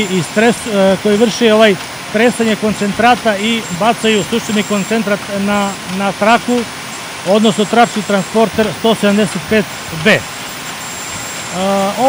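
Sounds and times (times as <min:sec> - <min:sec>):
man's voice: 0:00.0 - 0:06.6, 0:07.3 - 0:10.2, 0:11.5 - 0:12.0.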